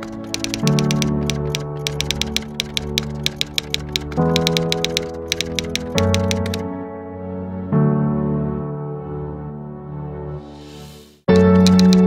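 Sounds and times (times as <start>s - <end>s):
typewriter keystroke clicks: 0.0s - 6.6s, 11.3s - 12.0s.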